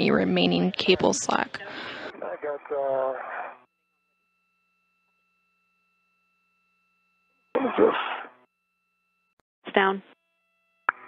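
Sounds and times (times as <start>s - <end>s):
voice over radio: 0.8s - 3.6s.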